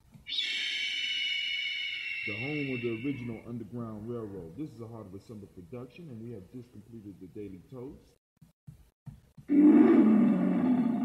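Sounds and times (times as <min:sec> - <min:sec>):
loud drawn-out roar: 0:09.5 - 0:11.0.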